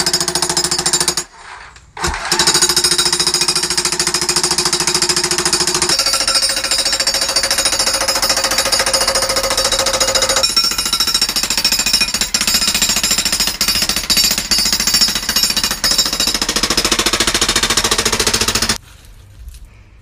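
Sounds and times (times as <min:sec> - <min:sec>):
jackhammer breaking concrete: 0:02.0 - 0:18.8.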